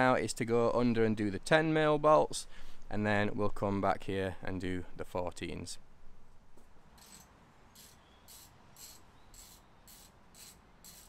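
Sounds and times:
socket ratchet clicking: 7.0s - 11.0s.

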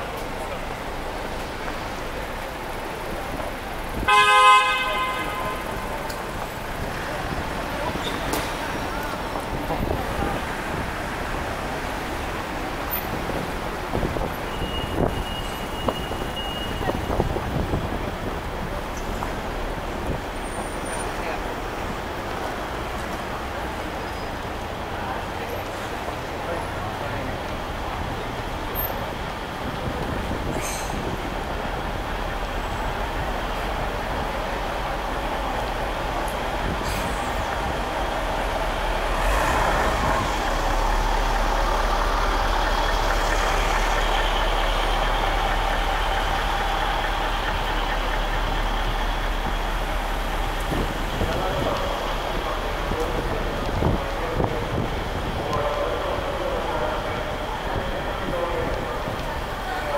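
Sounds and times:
heavy vehicle rumbling past: 0.0s - 59.9s
passers-by voices: 0.0s - 59.9s
road traffic: 0.0s - 59.9s.

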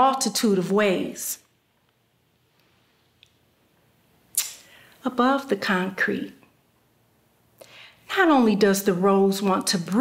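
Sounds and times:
woman speaking: 0.0s - 1.5s, 5.0s - 6.5s, 8.1s - 10.0s.

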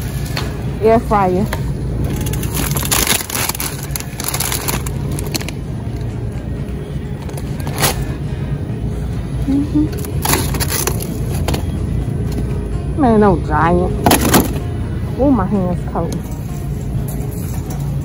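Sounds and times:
background music: 0.0s - 18.0s
low hum: 0.0s - 18.0s
plastic packaging crackling: 2.0s - 6.1s, 10.0s - 11.7s.

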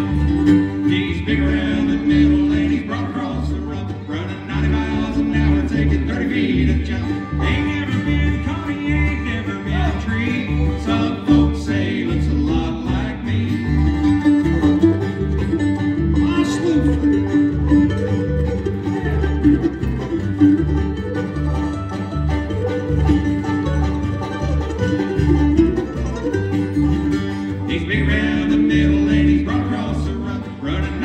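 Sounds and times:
bluegrass band playing: 0.0s - 31.0s.

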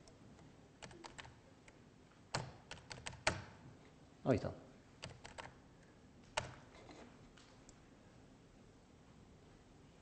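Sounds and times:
computer keyboard typing: 0.8s - 3.5s, 5.0s - 5.6s, 6.3s - 7.0s.

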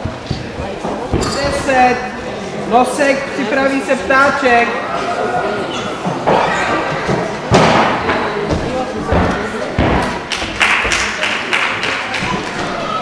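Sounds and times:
voices in a hall: 0.0s - 13.0s.

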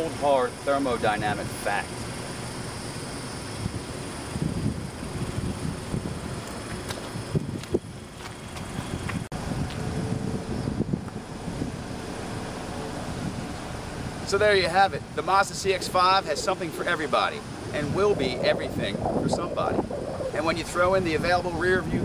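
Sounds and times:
outdoor background noise: 0.0s - 22.0s
wind on microphone: 3.2s - 22.0s.

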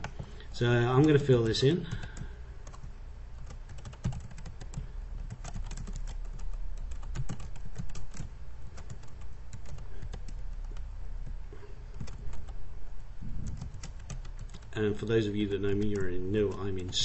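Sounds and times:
steady low hum: 0.0s - 17.0s
keyboard typing clicks: 1.9s - 12.6s.

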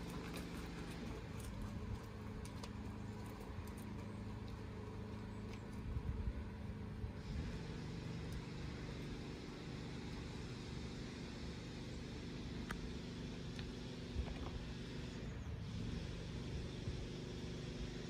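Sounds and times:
vehicle engine hum: 0.0s - 18.0s.

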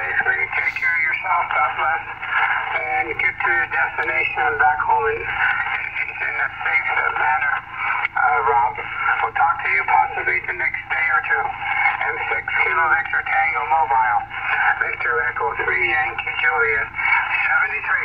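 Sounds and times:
man's voice over radio speaker: 0.0s - 18.0s.

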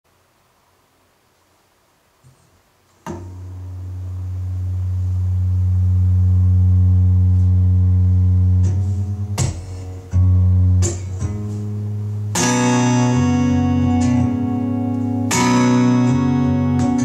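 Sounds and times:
acoustic guitar chords: 3.1s - 17.0s.

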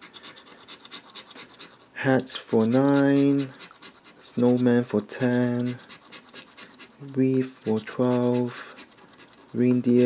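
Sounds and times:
scratching lottery ticket: 0.0s - 10.0s.

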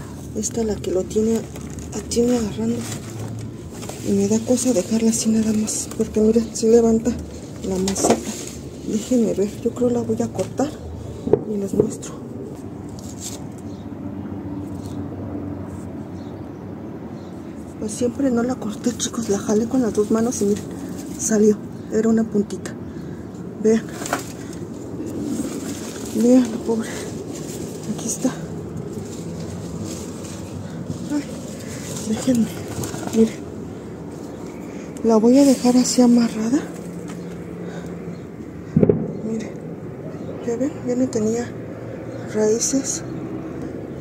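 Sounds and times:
rustling of dry leaves and soil: 0.0s - 15.1s, 17.2s - 44.0s
low background hum: 0.0s - 44.0s.

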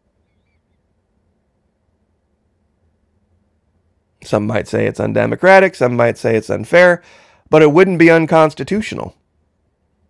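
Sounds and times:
faint low room hum: 0.0s - 10.0s
faint short chirps: 0.2s - 0.8s.

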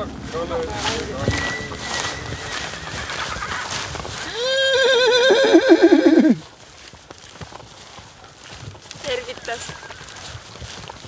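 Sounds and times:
horse whinnying: 2.0s - 6.4s.

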